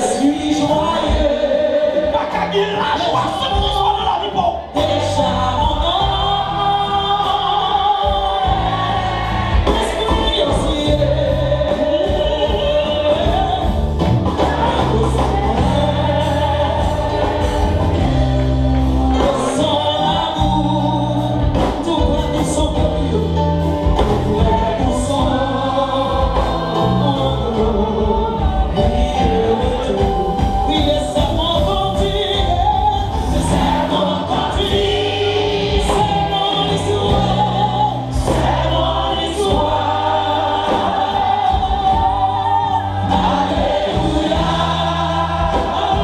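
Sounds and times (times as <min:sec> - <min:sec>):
amplified band playing: 0:00.0 - 0:46.0
sustained bass notes: 0:00.0 - 0:46.0
voices singing along: 0:00.0 - 0:46.0
drum hits: 0:23.8 - 0:46.0.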